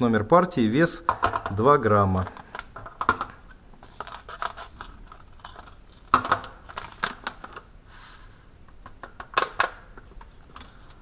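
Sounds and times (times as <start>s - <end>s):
paper packet crinkling: 3.8s - 7.7s.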